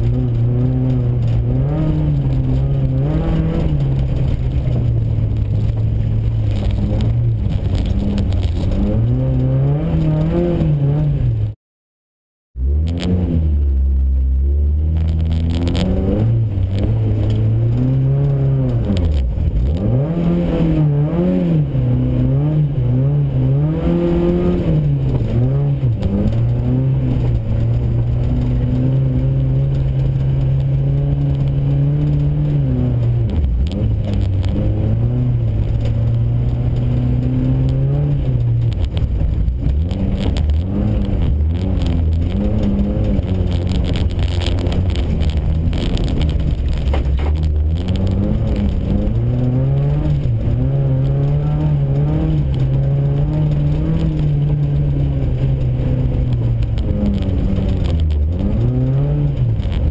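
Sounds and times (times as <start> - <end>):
car engine revving: 0.0 - 11.6, 12.6 - 59.9.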